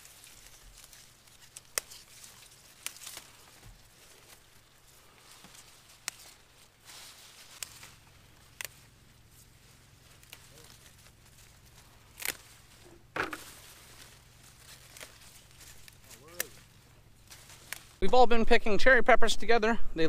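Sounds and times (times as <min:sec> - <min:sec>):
plant leaves rustling: 0:00.0 - 0:18.1
pepper stems snapping: 0:00.2 - 0:09.0, 0:10.0 - 0:18.0.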